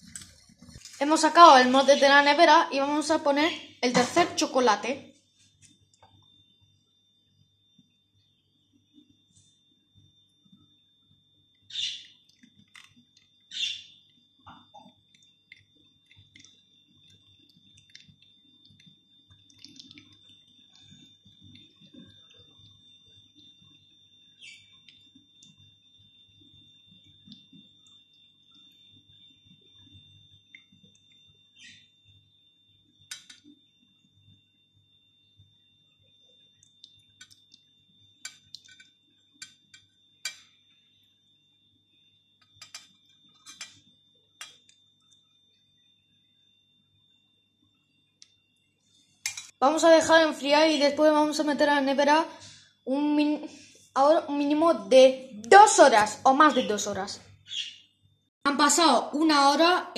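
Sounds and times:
metal spoon clinking on pan: 42.6s - 43.8s, 49.3s - 49.6s.

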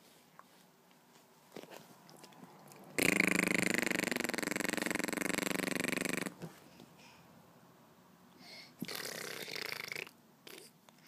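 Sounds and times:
rasping buzzy vocal sound: 3.0s - 6.4s, 8.8s - 10.7s.

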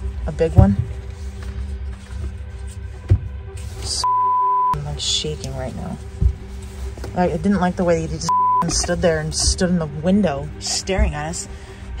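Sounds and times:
steady low hum: 0.0s - 12.0s
censor bleep: 4.0s - 4.8s, 8.3s - 8.7s.

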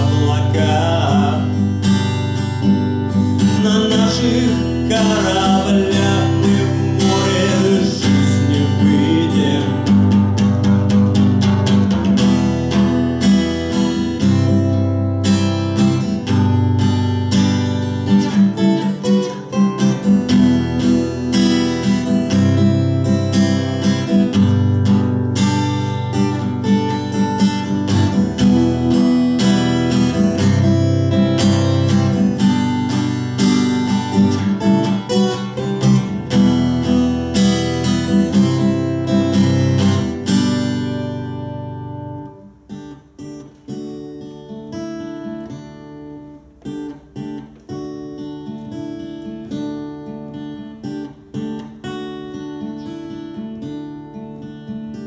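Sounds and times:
acoustic guitar strumming: 0.0s - 55.0s.

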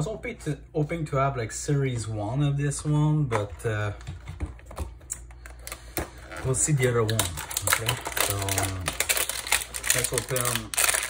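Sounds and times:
hands handling foil packs: 5.0s - 11.0s.

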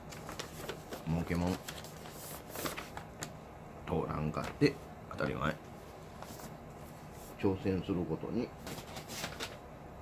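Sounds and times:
paper rustling: 0.0s - 3.3s, 8.6s - 9.6s.

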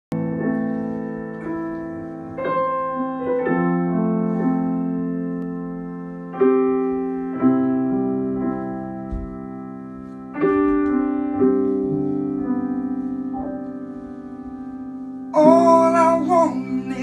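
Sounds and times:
slow piano chords: 0.1s - 17.0s.

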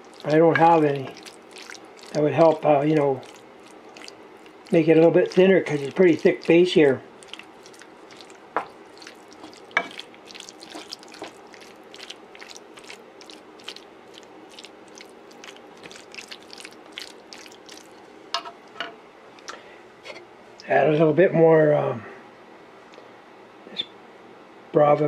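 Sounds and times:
meat sauce crackling in a pan: 0.0s - 18.1s
low steady hum: 0.0s - 25.0s.

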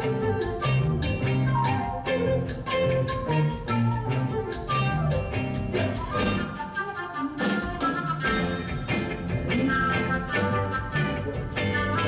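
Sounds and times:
bass guitar: 0.0s - 6.6s, 8.2s - 12.0s
drum kit: 0.0s - 6.7s, 7.4s - 12.0s
electric guitar: 0.0s - 12.0s
violin: 0.0s - 12.0s.

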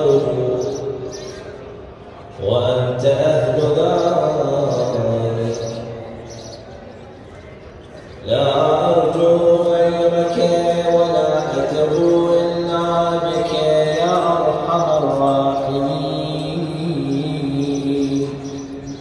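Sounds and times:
man chanting devotional recitation: 0.0s - 1.1s, 2.3s - 6.2s, 8.2s - 19.0s.

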